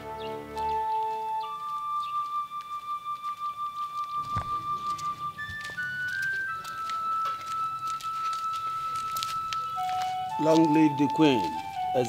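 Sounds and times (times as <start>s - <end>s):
film music long held notes: 0.0s - 12.0s.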